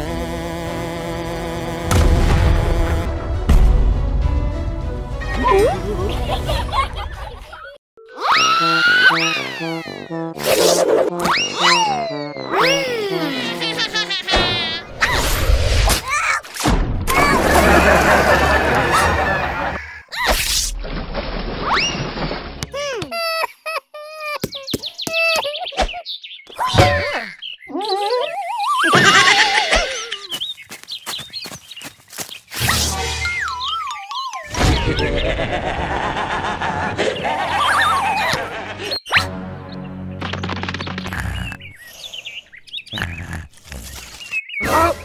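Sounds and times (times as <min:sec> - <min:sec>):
sudden thud: 0:01.9 - 0:02.7
squeaky cartoon voice crying out: 0:08.0 - 0:10.1, 0:11.3 - 0:13.8, 0:22.8 - 0:26.0, 0:26.6 - 0:30.3
cartoon music with rapid clicking: 0:08.1 - 0:14.4, 0:33.0 - 0:34.6, 0:40.1 - 0:41.7.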